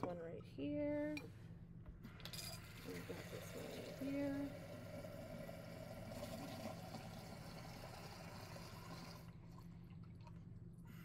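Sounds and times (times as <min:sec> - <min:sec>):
steady low hum: 0:00.0 - 0:11.0
water poured into glass: 0:02.4 - 0:10.4.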